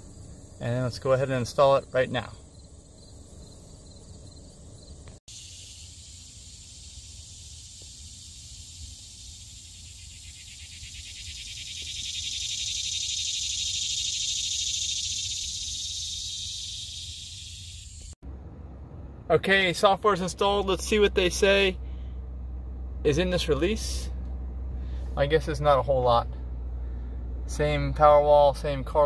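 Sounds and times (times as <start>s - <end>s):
insects chirring: 0.0s - 18.2s
steady low hum: 0.0s - 29.0s.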